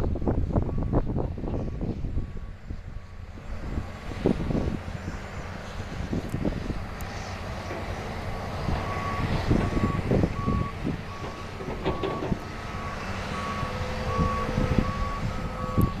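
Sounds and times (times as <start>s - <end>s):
diesel machinery rumble: 0.0s - 16.0s
reversing alarm beeping: 0.6s - 1.9s, 8.3s - 16.0s.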